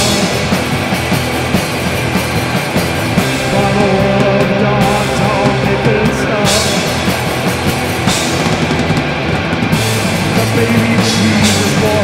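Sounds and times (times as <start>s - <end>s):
rock band with drum kit: 0.0s - 12.0s.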